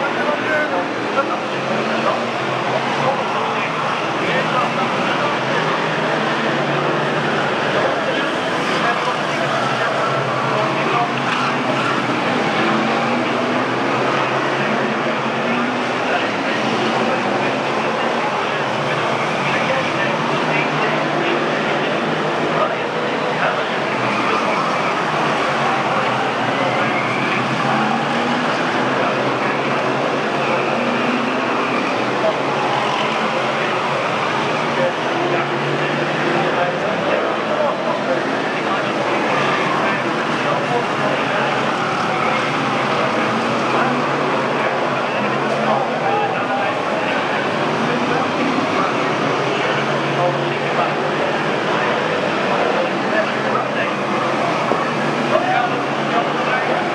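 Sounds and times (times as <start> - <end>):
racing car engines: 0.0 - 56.9.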